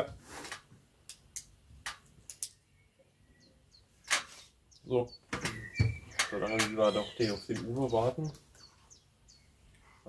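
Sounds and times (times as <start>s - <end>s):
faint bird chirps: 2.5s - 10.0s.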